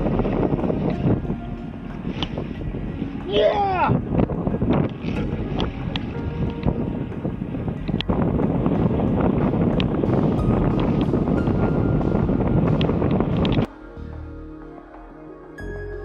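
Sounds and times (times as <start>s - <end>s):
wind noise on microphone: 0.0s - 16.0s.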